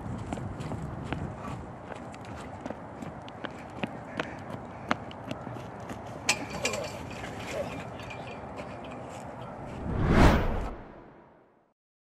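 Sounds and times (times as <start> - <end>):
footsteps clicking: 0.0 - 6.5.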